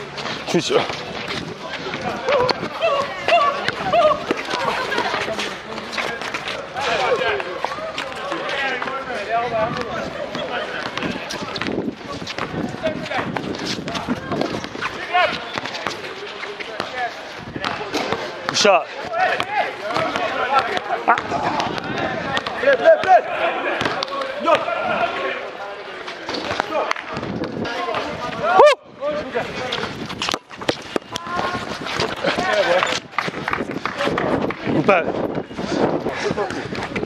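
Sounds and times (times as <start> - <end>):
players calling out: 0.0 - 37.0
basketball bouncing on concrete: 9.6 - 16.1, 16.7 - 24.7, 26.3 - 28.2, 29.6 - 34.7.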